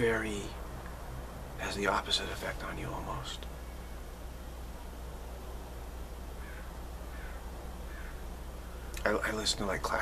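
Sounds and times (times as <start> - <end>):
steady low hum: 0.0 - 10.0
faint bird calls: 6.3 - 9.1.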